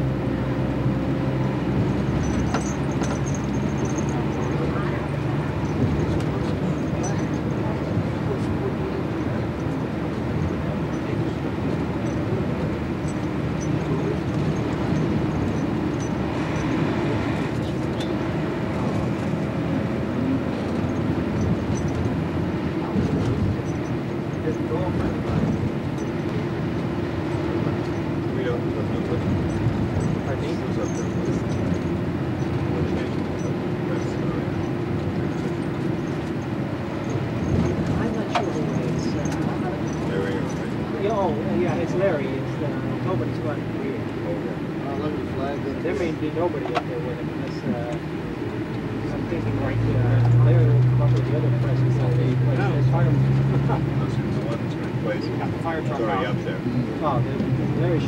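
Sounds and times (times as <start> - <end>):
vehicle engine and road noise: 0.0 - 58.0.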